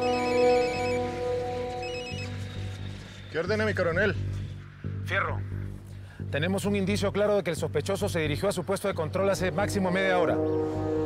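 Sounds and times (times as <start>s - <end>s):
phone ringtone beeps: 0.0s - 2.4s
background music score: 0.0s - 11.0s.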